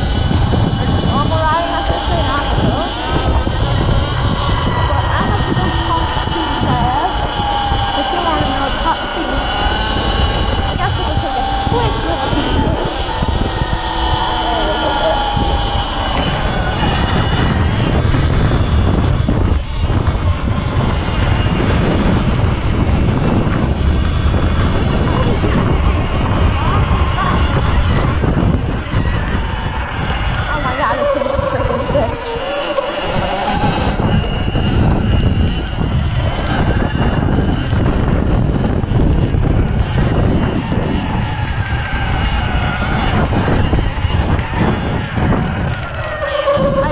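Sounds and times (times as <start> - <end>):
wind buffeting microphone: 0.0 - 46.9.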